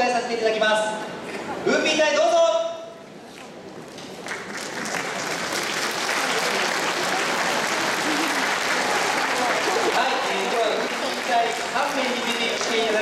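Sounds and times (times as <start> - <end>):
audience applauding: 4.2 - 13.0.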